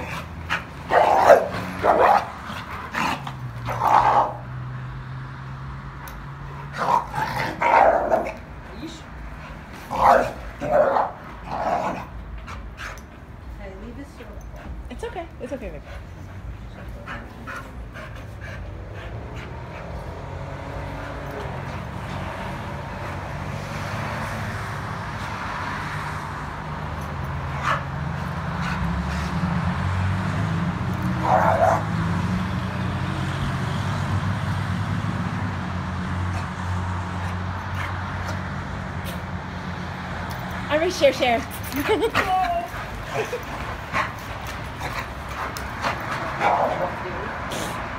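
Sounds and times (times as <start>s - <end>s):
dogs barking and growling: 0.0s - 5.0s, 6.4s - 8.6s, 9.2s - 13.2s, 16.0s - 24.7s, 27.2s - 32.8s, 35.3s - 47.9s.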